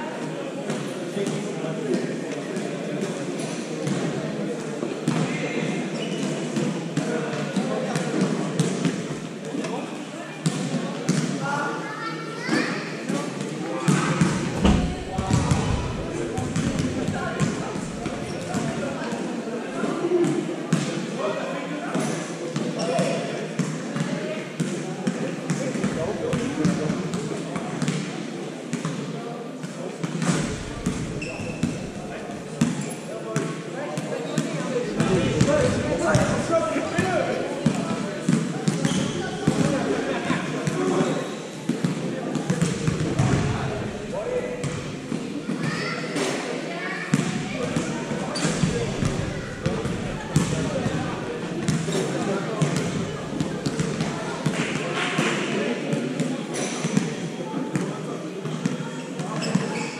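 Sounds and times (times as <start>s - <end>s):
hubbub of many voices: 0.0s - 59.9s
balls bouncing on hall floor: 13.9s - 19.2s, 30.0s - 32.8s, 34.9s - 39.8s, 47.1s - 56.0s.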